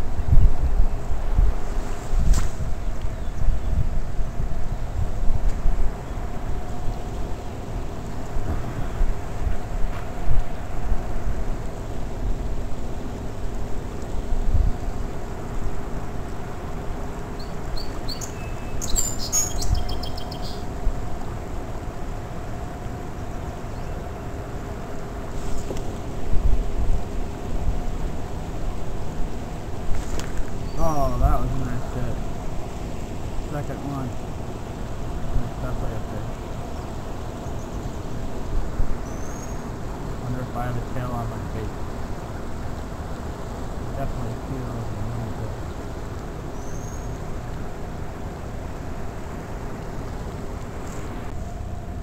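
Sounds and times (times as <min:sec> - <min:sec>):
wind buffeting microphone: 0:00.0 - 0:16.4, 0:24.8 - 0:39.9
faint steady hum: 0:00.0 - 0:52.0
bird chirping: 0:17.4 - 0:20.7, 0:30.5 - 0:31.8, 0:39.0 - 0:39.7, 0:46.6 - 0:47.2.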